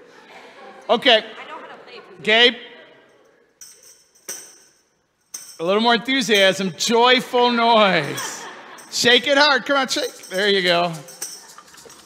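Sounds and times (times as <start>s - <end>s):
tambourine jingling: 3.0s - 12.0s.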